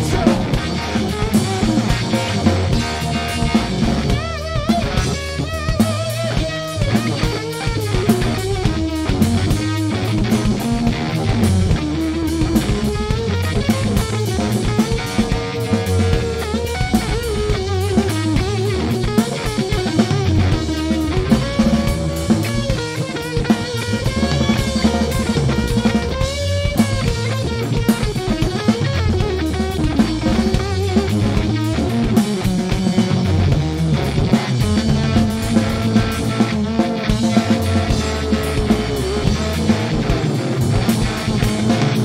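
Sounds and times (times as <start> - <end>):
drum kit beat: 0.0 - 42.0
electric guitar lead: 0.0 - 42.0.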